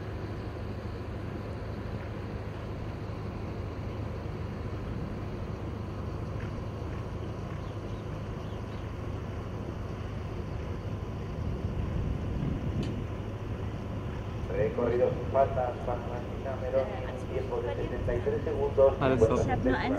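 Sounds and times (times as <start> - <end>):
low outdoor rumble: 0.0 - 19.9.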